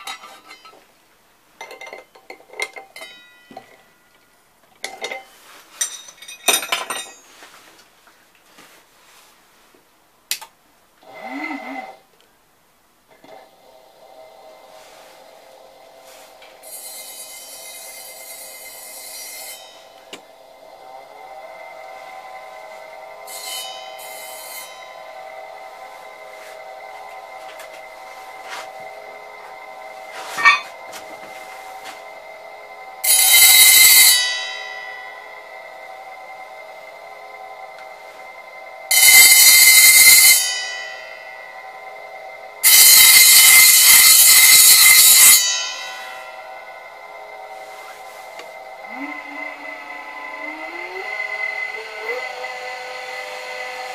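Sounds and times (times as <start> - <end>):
motor humming with thin whine: 13.1 - 44.8, 45.5 - 53.9
blade grinding on spinning disk: 13.3 - 53.9.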